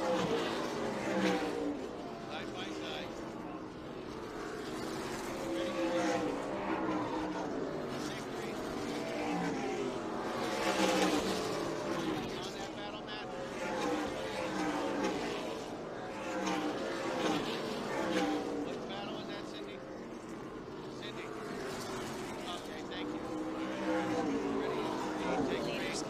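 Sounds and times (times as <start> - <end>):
stock car engines racing: 0.0 - 26.0.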